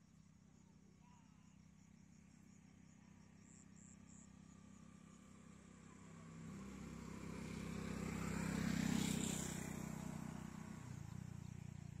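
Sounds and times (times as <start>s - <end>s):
motor vehicle engine hum: 2.1s - 12.0s.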